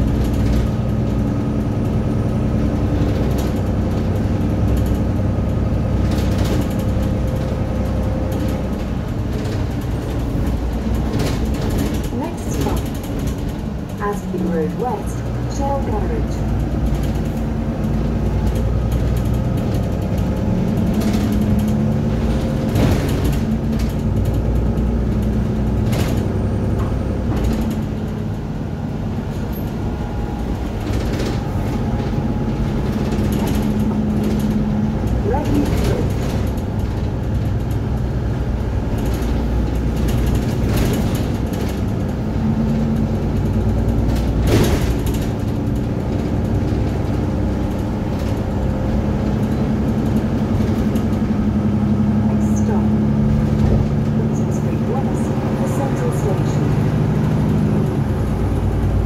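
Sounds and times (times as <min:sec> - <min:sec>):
interior fittings rattling: 0:00.0 - 0:28.4
bus engine drone: 0:00.0 - 0:59.0.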